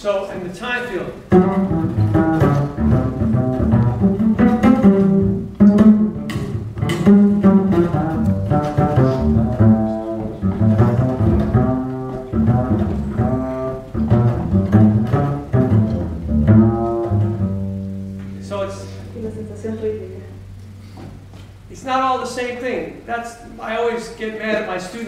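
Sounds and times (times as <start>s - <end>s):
plucked double bass: 1.2s - 21.3s.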